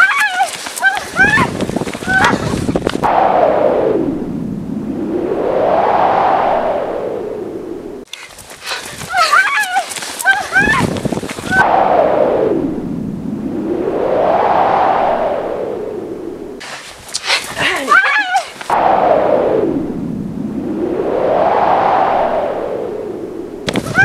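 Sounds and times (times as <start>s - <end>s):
long pitch-sweeping whoosh: 3.0s - 8.0s, 11.6s - 16.6s, 18.7s - 23.7s.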